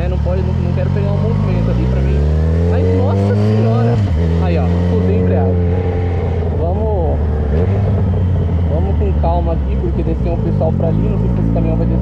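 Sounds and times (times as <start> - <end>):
motorcycle engine low drone: 0.0 - 12.0.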